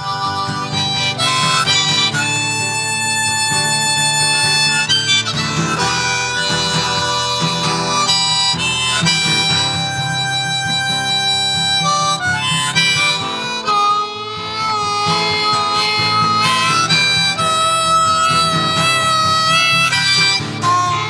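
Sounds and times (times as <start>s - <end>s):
acoustic guitar: 0.0s - 21.0s
harmonica playing: 0.0s - 21.0s.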